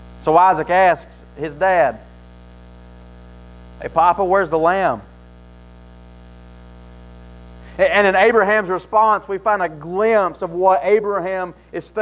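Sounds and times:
electrical mains hum: 0.0 - 12.0
man talking: 0.2 - 2.1, 3.8 - 5.1, 7.8 - 12.0.

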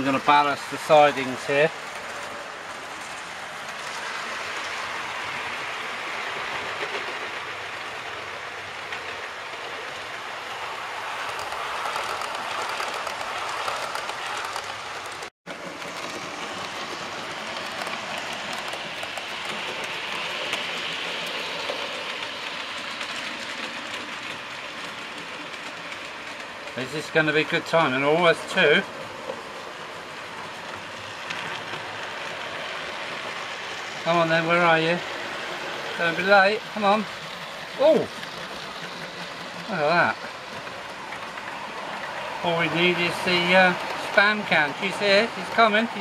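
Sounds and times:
model train motors whirring: 0.0 - 46.0
wheels rolling on rails: 0.0 - 46.0.

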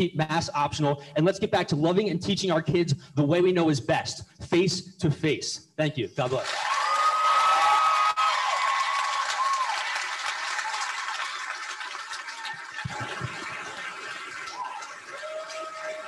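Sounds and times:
audience applauding: 6.4 - 16.0.

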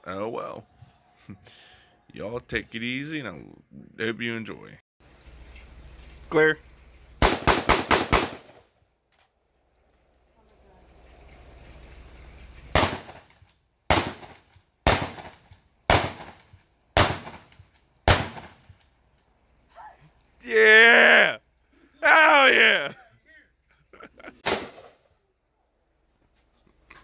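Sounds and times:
rifle shots: 7.2 - 8.6, 12.8 - 13.3, 13.9 - 18.6, 24.4 - 25.0
man yelling: 20.4 - 21.4, 22.0 - 23.5.

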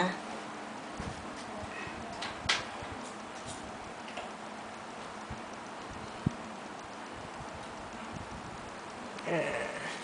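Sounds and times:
faint regular ticking: 2.2 - 9.8.

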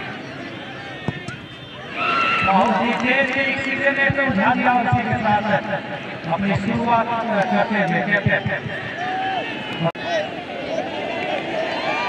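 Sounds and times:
spectators yelling: 1.8 - 2.8, 7.3 - 12.0.

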